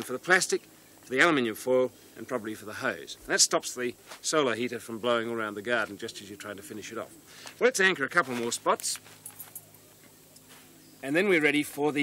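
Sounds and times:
low steady hum: 0.0 - 12.0
plastic sheeting rustling: 8.1 - 9.5.

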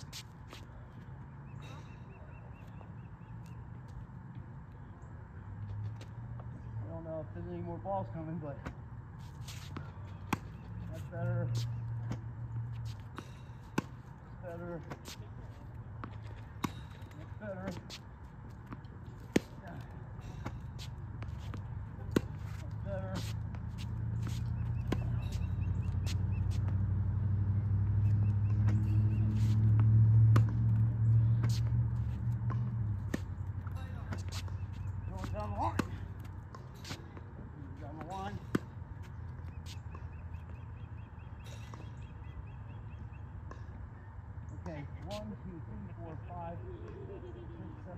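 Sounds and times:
tennis ball bouncing: 9.4 - 15.2, 15.8 - 40.7.

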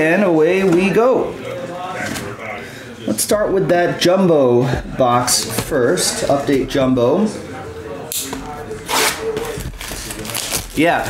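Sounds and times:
plastic wrap rustling: 8.8 - 11.0.

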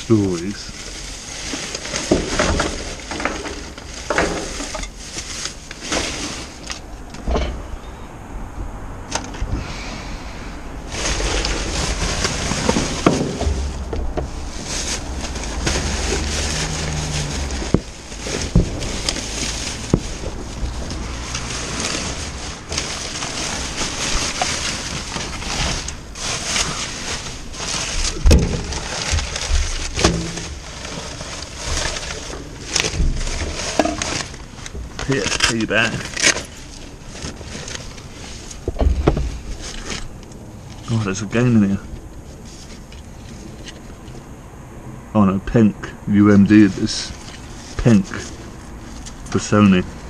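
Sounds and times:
plastic bags rustling: 0.0 - 7.8, 10.7 - 44.1, 46.5 - 50.0
items knocking against bin: 12.6 - 14.3.

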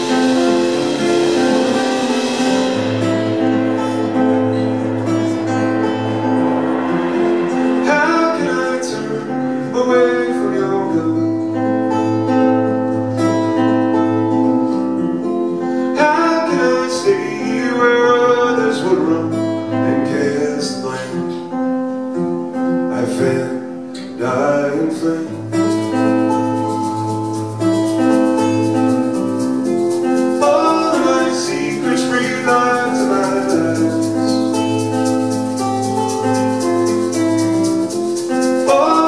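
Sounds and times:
acoustic guitar playing: 0.0 - 39.0
person singing: 3.6 - 11.6, 15.8 - 21.4, 22.9 - 27.1, 29.2 - 39.0.

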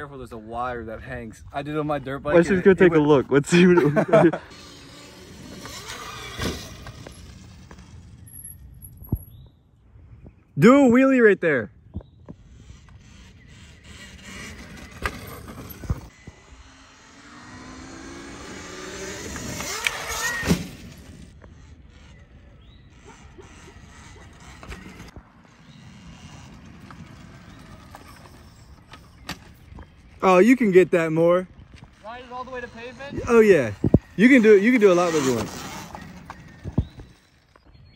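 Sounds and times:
electric motor whine: 3.9 - 8.2, 12.3 - 29.2.

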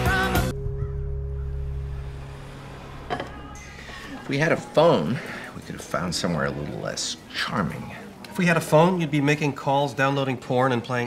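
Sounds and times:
car engine idling: 0.5 - 5.5.

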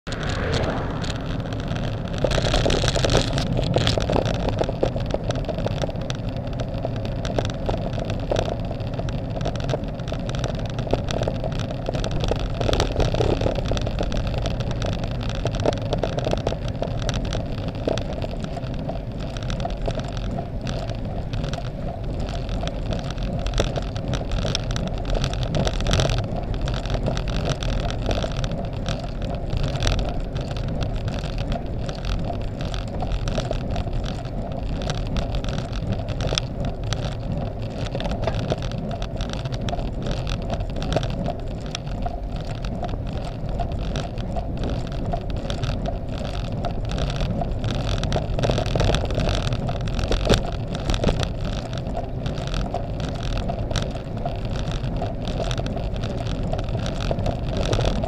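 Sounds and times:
wind rushing over microphone: 0.0 - 5.4
bicycle tyres on asphalt: 0.0 - 58.0.

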